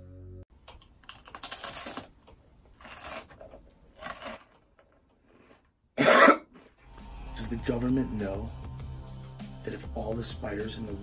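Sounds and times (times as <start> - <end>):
man clearing his throat: 6.0 - 6.6.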